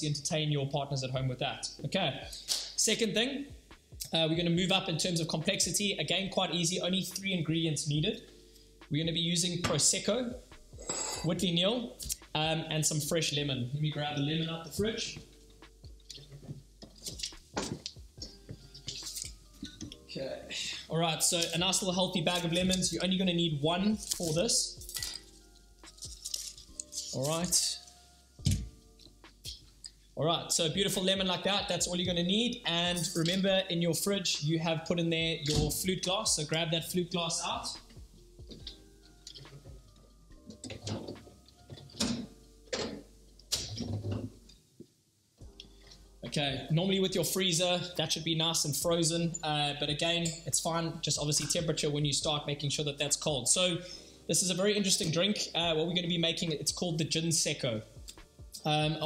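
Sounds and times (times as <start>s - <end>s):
sliding and handling noise: 25.0s - 28.0s.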